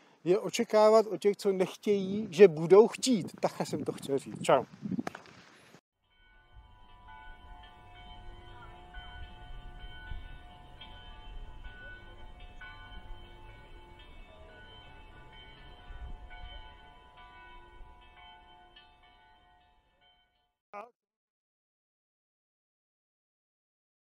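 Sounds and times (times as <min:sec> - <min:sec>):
carillon bells playing a melody: 0:06.1 - 0:20.4.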